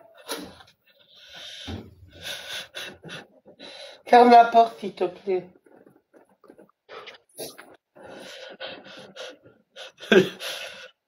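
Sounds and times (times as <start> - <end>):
stifled laughter: 8.8 - 10.9.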